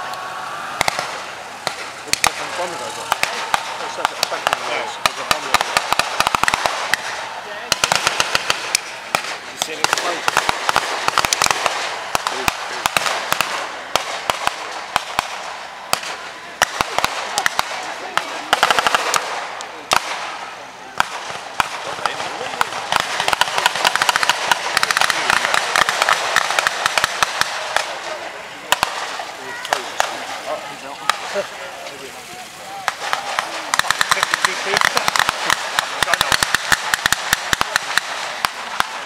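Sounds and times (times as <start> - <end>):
background hiss: 0.0 - 39.0
blank gunshots: 0.7 - 31.6, 32.8 - 39.0
rapid machine-gun fire: 0.8 - 31.5, 32.9 - 39.0.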